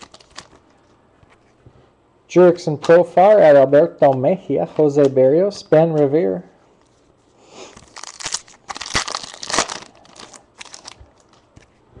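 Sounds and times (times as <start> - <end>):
wrapper being torn and crumpled: 0.0 - 0.6, 7.8 - 11.4.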